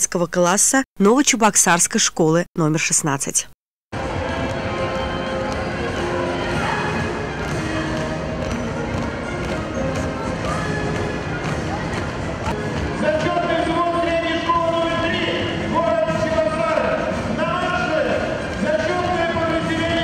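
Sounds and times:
music playing in hall: 4.0 - 20.0
marching feet stamping on floor: 4.1 - 12.9.

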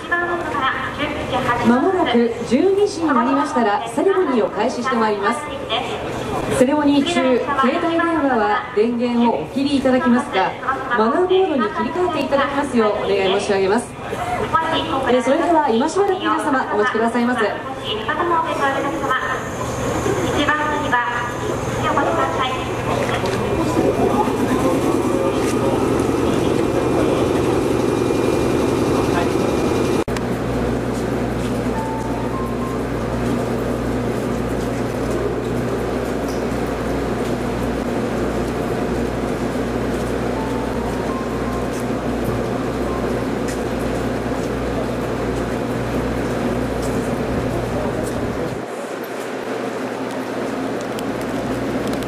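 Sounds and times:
crowd chatter: 4.3 - 52.0
electric train humming: 11.6 - 52.0.

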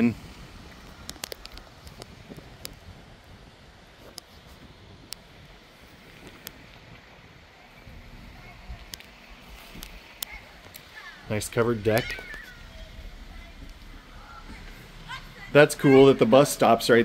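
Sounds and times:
wind on microphone: 0.0 - 10.1.

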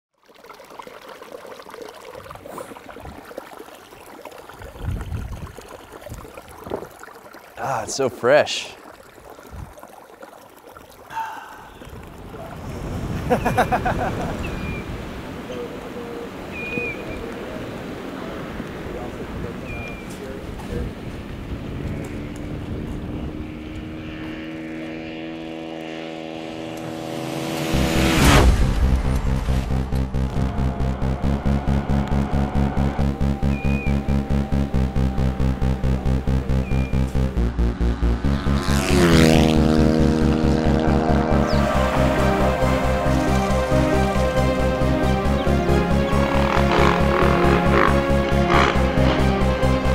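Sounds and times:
stream babbling over rocks: 0.1 - 12.7
dirt bike engine droning: 20.7 - 49.9
loud whoosh: 26.5 - 43.8
low rumble: 26.7 - 48.2
heavy bass beat: 27.8 - 49.9.

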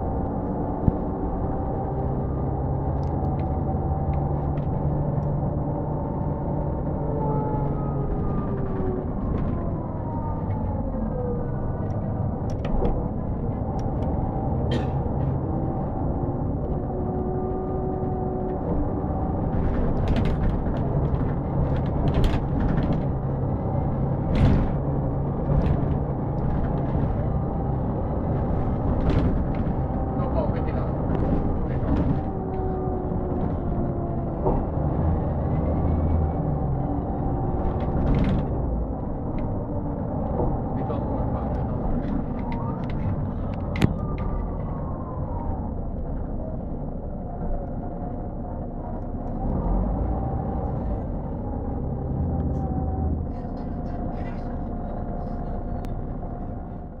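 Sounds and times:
bus diesel engine rumble: 0.0 - 57.0.

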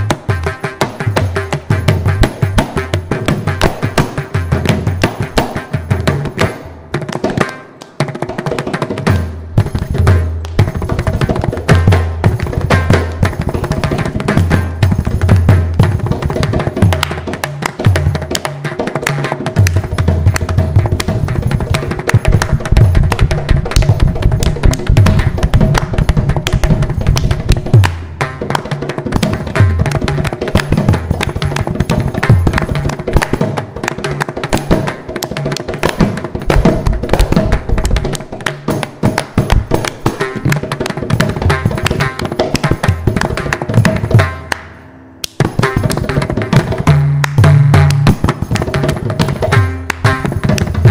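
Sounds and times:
hand drum percussion solo: 0.0 - 50.9.

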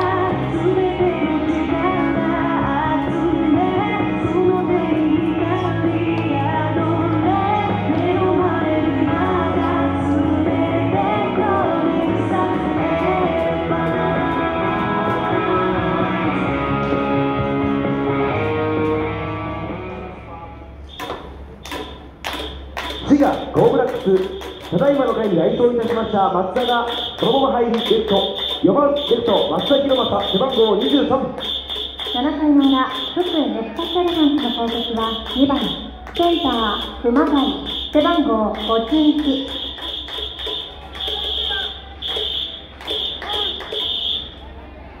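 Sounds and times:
shrill whistle blasts: 20.9 - 21.2, 25.9 - 44.4
crowd shouting: 38.6 - 44.4.

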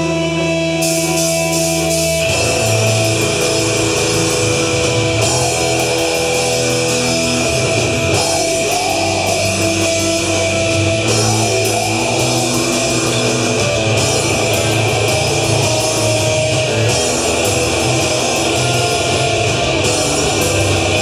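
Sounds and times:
bass guitar: 0.0 - 21.0
distorted electric guitars: 0.0 - 21.0
drum kit with cymbals: 0.0 - 21.0.

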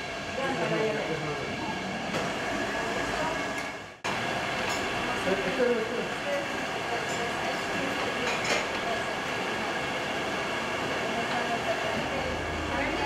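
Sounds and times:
general hubbub: 4.5 - 13.0
people talking: 5.2 - 9.8, 10.9 - 13.0.

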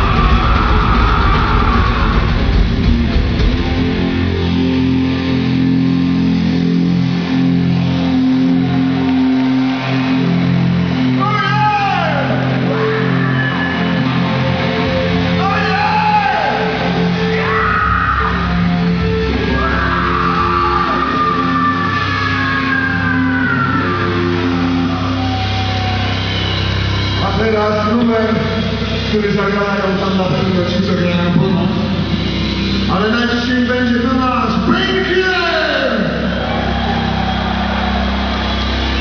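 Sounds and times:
distorted electric guitars: 0.0 - 39.0.

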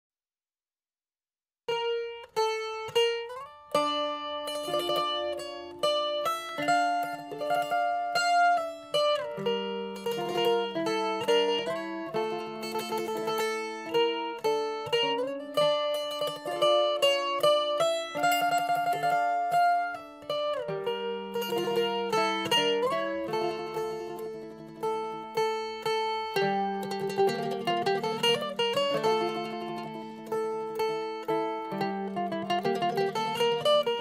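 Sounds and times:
mandolin tremolo melody: 1.7 - 34.0.

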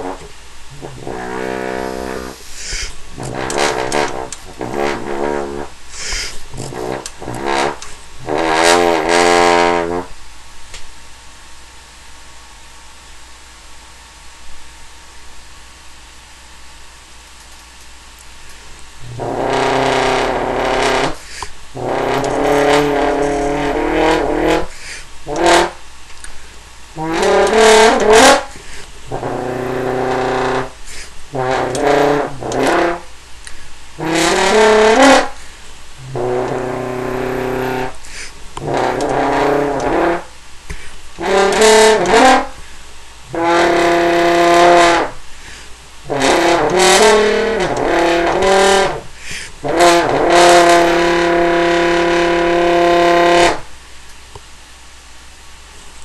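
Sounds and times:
french horn held notes: 0.0 - 10.2, 19.0 - 25.8, 26.9 - 33.1, 34.0 - 40.4, 41.2 - 42.7, 43.3 - 45.2, 46.1 - 53.6
player breathing: 1.7 - 3.3, 5.9 - 6.8, 21.2 - 21.6, 24.7 - 25.2, 28.5 - 29.0, 30.8 - 31.2, 38.0 - 38.4, 40.7 - 41.0, 45.3 - 45.8, 49.1 - 49.6.

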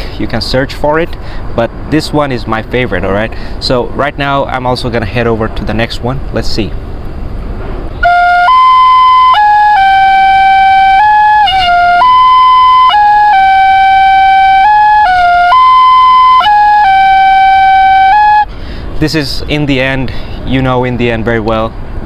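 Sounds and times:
bamboo flute melody: 8.0 - 18.5.

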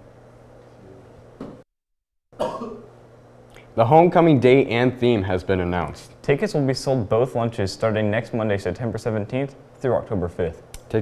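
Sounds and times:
person coughing: 2.4 - 2.9
steady low hum: 2.4 - 11.0.

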